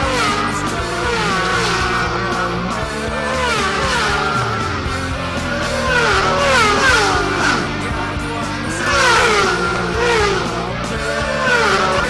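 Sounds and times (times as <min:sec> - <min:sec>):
racing motorcycle speeding past: 0:00.0 - 0:12.0
rock music with steady beat: 0:00.0 - 0:12.0.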